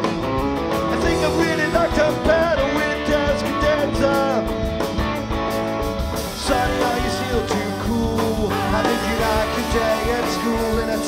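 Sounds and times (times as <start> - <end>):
bending lead guitar line: 0.0 - 11.0
live rock band playing: 0.0 - 11.0.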